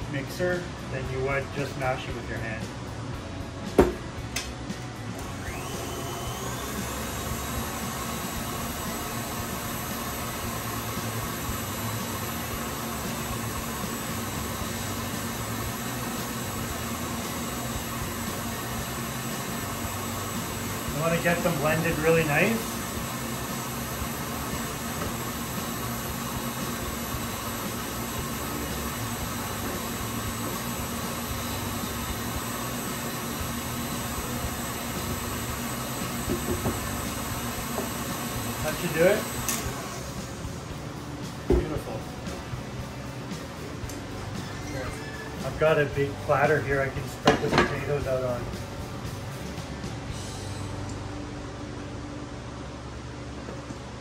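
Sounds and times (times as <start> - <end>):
stand mixer motor whining: 5.1 - 40.8
beater mashing potatoes in bowl: 5.2 - 40.6.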